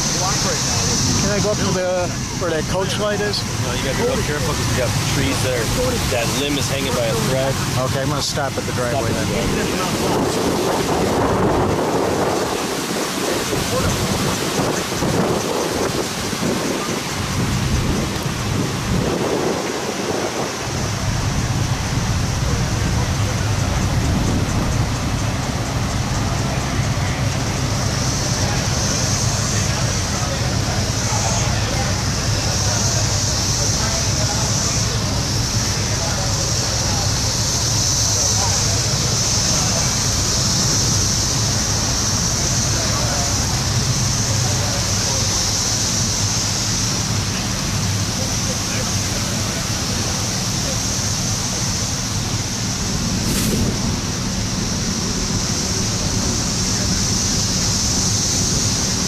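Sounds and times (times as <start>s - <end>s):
constant hiss: 0.0s - 59.0s
high thin steady buzz: 51.4s - 59.0s.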